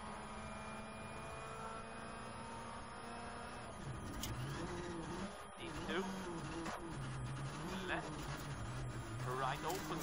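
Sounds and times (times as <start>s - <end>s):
rally car driving on gravel: 3.8s - 10.0s.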